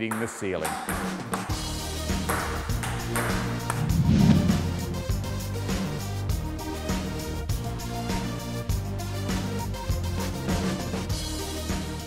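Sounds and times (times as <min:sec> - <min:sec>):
music with steady beat: 0:02.2 - 0:06.0.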